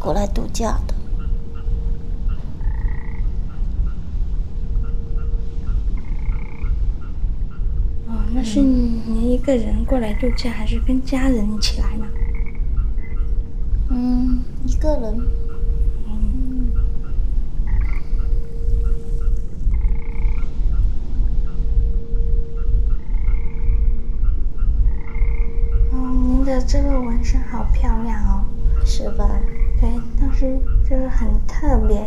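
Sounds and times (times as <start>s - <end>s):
frogs croaking: 0.0s - 32.0s
steady hum: 0.0s - 32.0s
steady low rumble: 0.0s - 32.0s.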